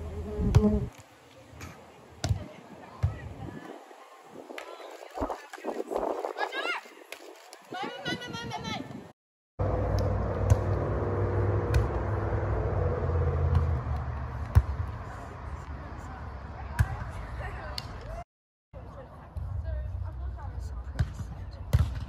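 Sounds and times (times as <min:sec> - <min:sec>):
low rumble: 0:09.6 - 0:15.6.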